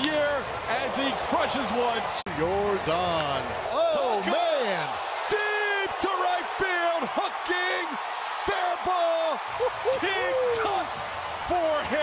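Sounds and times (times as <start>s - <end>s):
crowd noise: 0.0s - 12.0s
man exclaiming excitedly: 3.8s - 10.9s.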